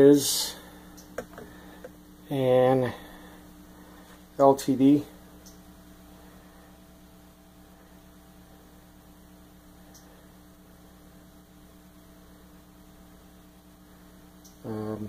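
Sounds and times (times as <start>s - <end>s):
amplifier mains hum: 0.0s - 15.0s
faint tick: 9.9s - 10.1s.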